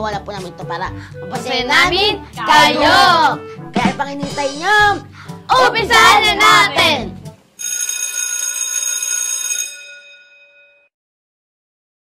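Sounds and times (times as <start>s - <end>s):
electric bell ringing: 7.6s - 10.9s.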